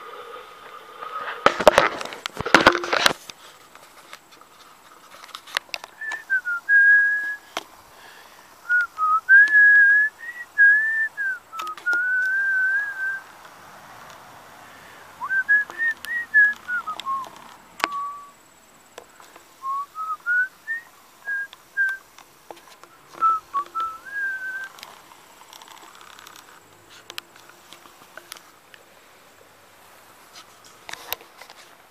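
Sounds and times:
person whistling a tune: 6.0 - 7.5, 8.6 - 13.3, 15.2 - 18.4, 19.6 - 22.0, 22.9 - 24.8
sharp clicks: 10.6 - 12.4.

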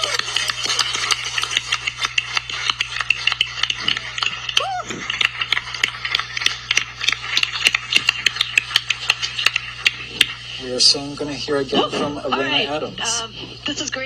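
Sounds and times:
crowd cheering: 0.0 - 6.3
people applauding: 0.0 - 10.3.

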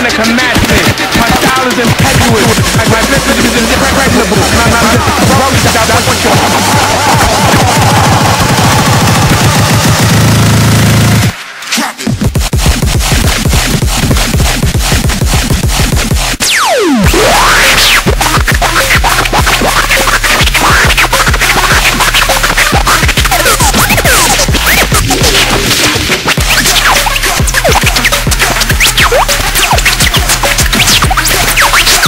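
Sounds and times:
beat: 0.0 - 32.0
turntable scratching: 0.0 - 32.0.

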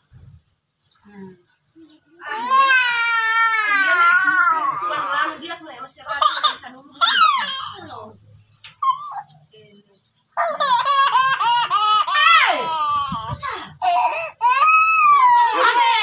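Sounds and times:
baby crying: 2.2 - 8.0, 10.4 - 16.0.

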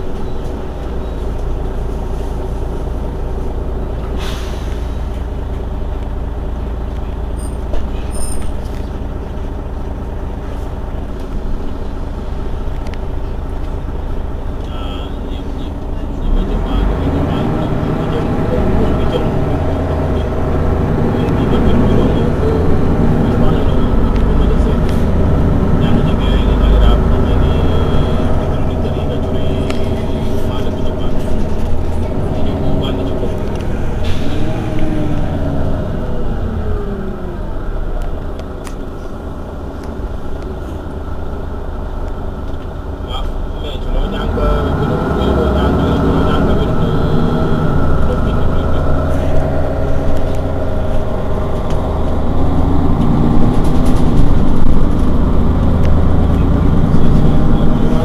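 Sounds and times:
bus engine running: 0.0 - 58.0.

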